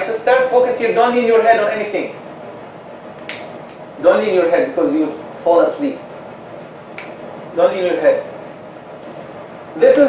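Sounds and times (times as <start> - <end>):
finger snap: 3.2 - 3.8, 7.0 - 7.2.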